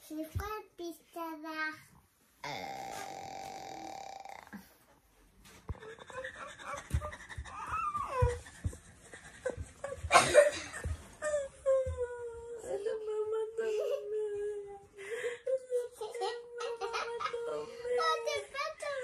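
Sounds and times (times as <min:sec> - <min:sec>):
buzzing vocal noise: 0:02.4 - 0:04.7
child and woman vocal sounds: 0:02.4 - 0:04.7, 0:11.6 - 0:19.0
soft bumps and handling knocks: 0:05.4 - 0:12.2.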